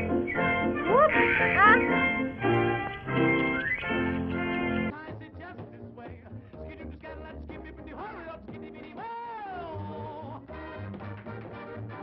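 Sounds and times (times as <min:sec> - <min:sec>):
cartoon band music: 0:00.0 - 0:12.0
long high wailing cry: 0:00.5 - 0:03.3.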